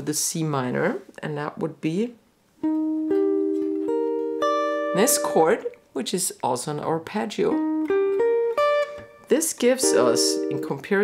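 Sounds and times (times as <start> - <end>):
electric guitar arpeggio: 2.6 - 5.8, 7.5 - 11.0.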